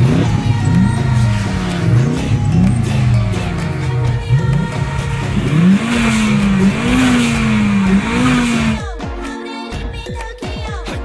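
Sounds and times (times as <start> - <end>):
car engines accelerating: 0.0 - 8.8.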